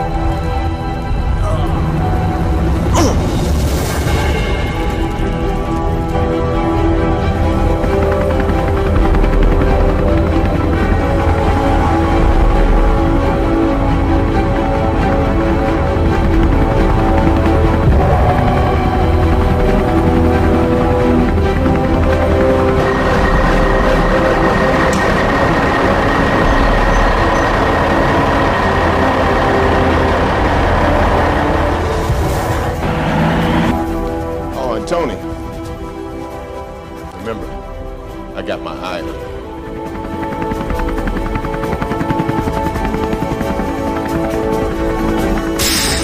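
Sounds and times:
dark background music: 0.0s - 46.0s
helicopter rotor beating: 1.9s - 46.0s.

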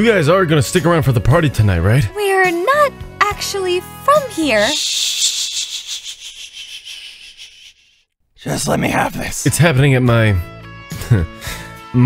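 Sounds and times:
person shushing: 4.6s - 8.0s.

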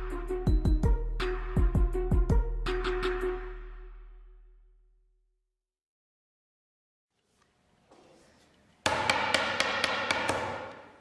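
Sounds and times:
loud knocks: 8.9s - 10.9s.

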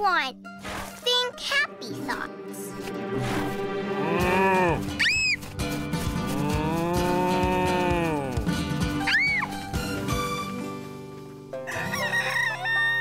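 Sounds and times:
children's background music: 0.0s - 13.0s
cartoon mooing: 3.9s - 4.9s, 6.4s - 8.4s.

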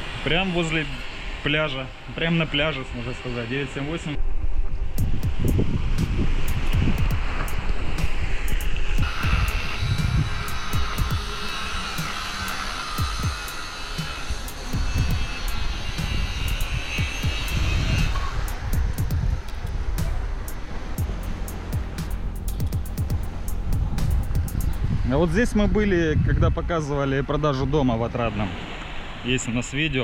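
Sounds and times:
high whine: 4.1s - 26.3s
wind buffeting microphone: 4.2s - 27.8s.

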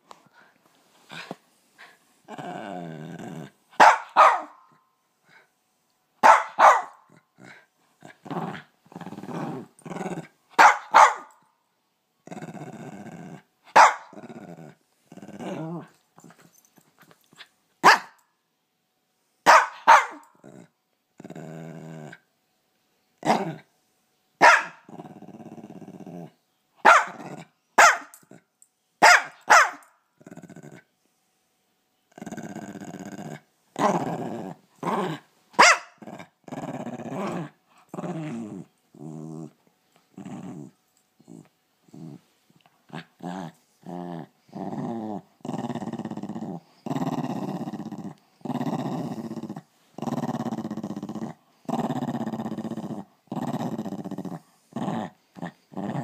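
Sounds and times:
dog growling: 1.1s - 3.6s, 7.1s - 10.4s, 12.2s - 16.0s, 20.4s - 22.3s, 23.2s - 23.7s, 24.5s - 26.4s, 30.2s - 30.9s, 32.1s - 35.3s, 36.0s - 42.3s, 42.9s - 56.0s
dog barking sharply: 3.8s - 4.6s, 6.2s - 7.0s, 10.6s - 11.3s, 13.8s - 14.0s, 17.8s - 18.1s, 19.5s - 20.2s, 24.4s - 24.8s, 26.8s - 27.2s, 27.8s - 28.1s, 29.0s - 29.8s.

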